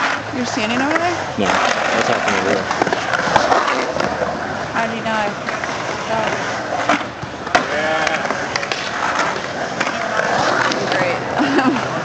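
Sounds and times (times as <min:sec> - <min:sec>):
sharp skateboard clack: 0:00.0 - 0:12.0
skateboard wheels rolling on concrete: 0:00.0 - 0:12.0.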